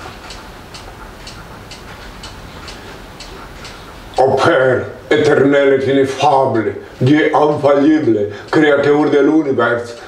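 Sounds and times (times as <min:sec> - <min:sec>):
light ticking: 0:00.0 - 0:10.0
steady low hum: 0:00.0 - 0:10.0.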